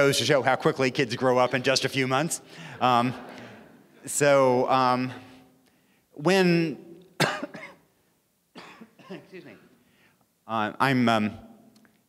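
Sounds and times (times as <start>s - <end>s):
man coughing: 7.2s - 7.9s, 8.6s - 9.8s.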